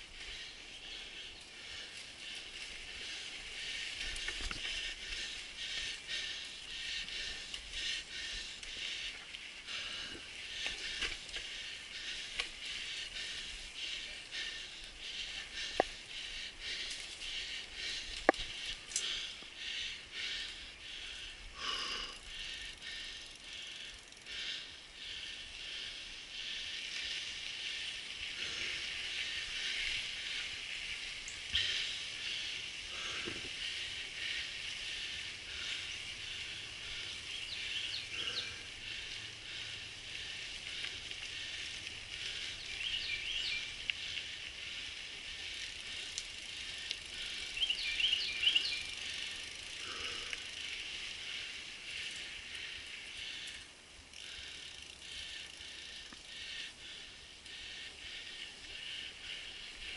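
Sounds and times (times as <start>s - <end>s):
bike tyre and chassis rattle: 0.0s - 59.9s.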